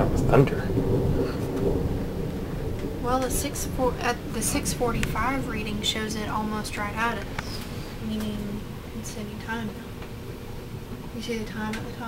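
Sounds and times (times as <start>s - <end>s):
rolling thunder rumble: 0.0s - 12.0s.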